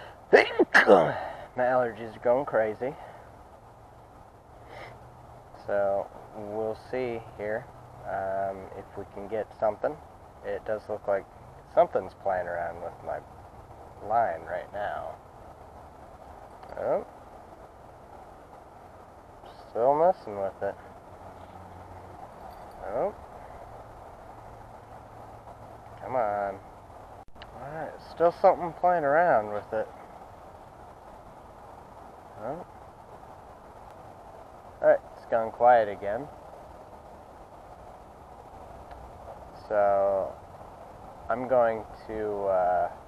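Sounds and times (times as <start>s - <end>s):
faint hiss: 0.0s - 43.0s
low rumble: 0.0s - 43.0s.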